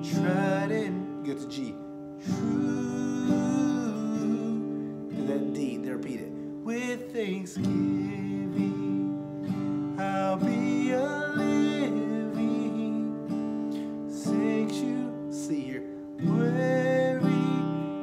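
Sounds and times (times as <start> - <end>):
acoustic guitar strumming: 0.0 - 18.0
man singing: 0.0 - 18.0.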